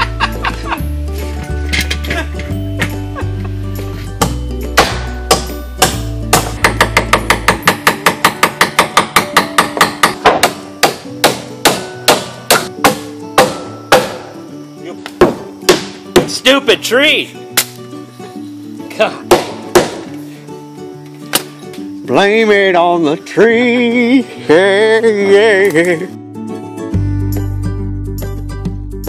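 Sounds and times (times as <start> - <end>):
background music: 0.0 - 29.0.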